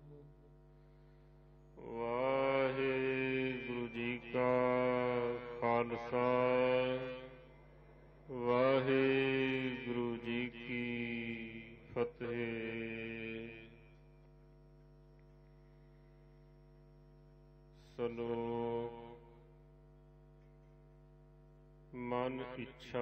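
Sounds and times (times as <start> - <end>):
person chanting devotional verse: 0.0 - 14.4, 17.7 - 19.7, 21.9 - 23.0.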